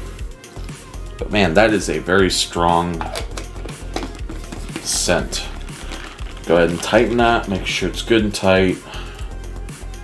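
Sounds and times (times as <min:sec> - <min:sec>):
low background music: 0:00.0 - 0:10.0
plastic shaker cup clicks: 0:03.0 - 0:04.2.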